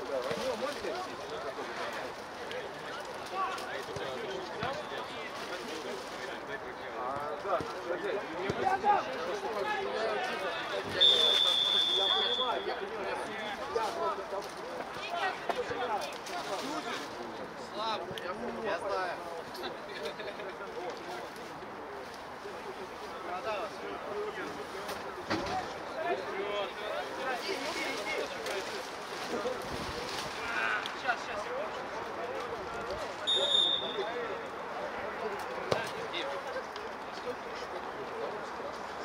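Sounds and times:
referee's whistle blast: 0:11.0 - 0:12.6, 0:33.3 - 0:34.1.

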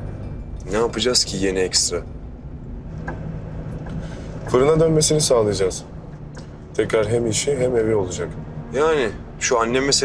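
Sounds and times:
car engine rumble inside cabin: 0:00.0 - 0:10.0
low hum: 0:00.0 - 0:10.0.

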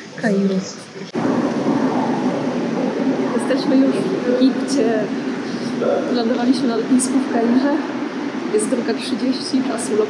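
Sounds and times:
airport corridor ambient rush: 0:00.0 - 0:10.0.

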